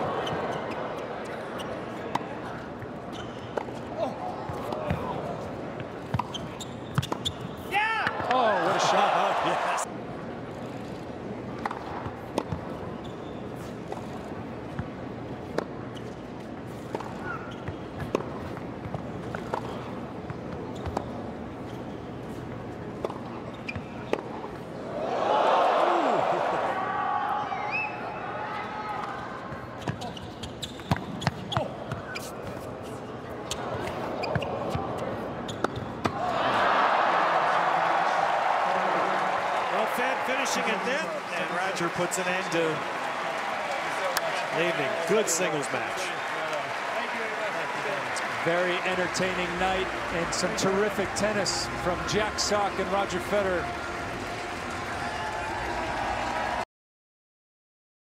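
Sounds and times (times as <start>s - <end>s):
ball bouncing on court: 6.1s - 7.4s, 29.5s - 32.6s
crowd cheering and shouting: 7.7s - 9.9s, 24.9s - 27.7s, 36.2s - 56.6s.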